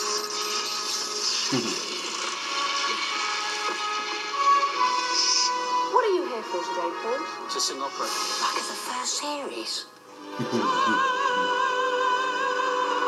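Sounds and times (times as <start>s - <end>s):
tv show intro music: 0.0s - 13.0s.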